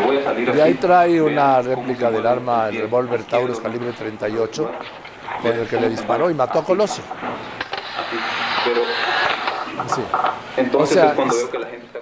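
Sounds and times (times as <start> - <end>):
muffled indistinct voices: 0.0 - 12.0
steady hiss: 0.7 - 12.0.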